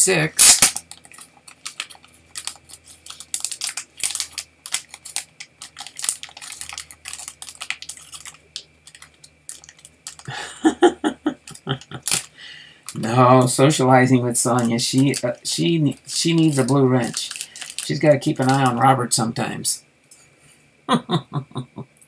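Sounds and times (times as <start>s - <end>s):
plastic wrappers crinkling: 0.4s - 10.4s, 11.6s - 19.2s
trading cards shuffled and handled: 0.5s - 10.3s, 16.2s - 18.8s.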